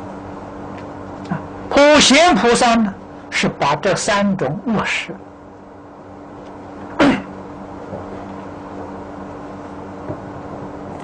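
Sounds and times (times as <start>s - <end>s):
steady low hum: 0.0s - 11.0s
man's sharp throat noise: 6.8s - 7.4s.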